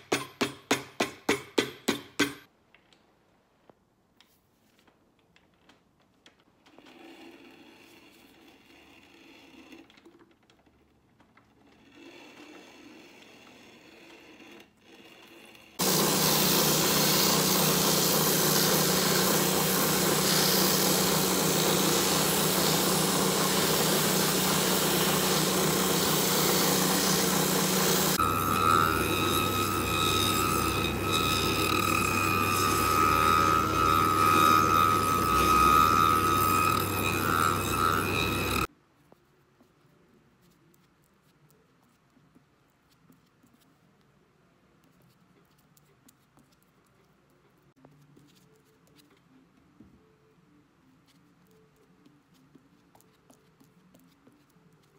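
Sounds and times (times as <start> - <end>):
sanding wheel grinding boot sole: 15.8 - 38.7
machine high whine over low hum: 26.0 - 38.7.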